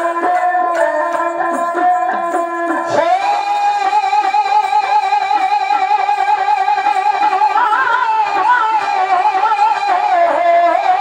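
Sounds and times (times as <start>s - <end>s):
bowed sarangi: 0.0s - 11.0s
person singing a long note: 0.0s - 11.0s.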